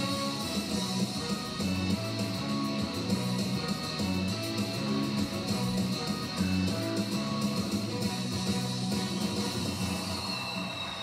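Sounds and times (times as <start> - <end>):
news bumper music from television: 0.0 - 11.0.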